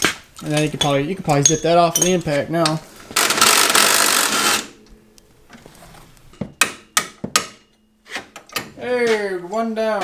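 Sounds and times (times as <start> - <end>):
sharp metallic clinks: 0.6 - 4.0.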